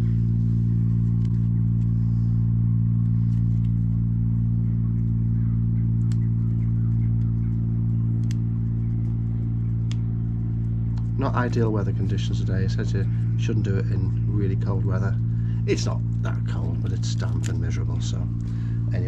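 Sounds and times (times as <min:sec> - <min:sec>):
low mechanical motor hum: 0:00.0 - 0:19.0.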